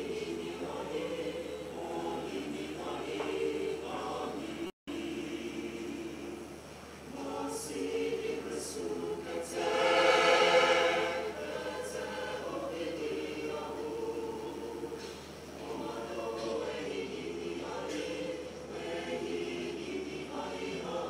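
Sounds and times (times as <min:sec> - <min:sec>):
mixed choir singing a hymn: 0:00.0 - 0:21.0.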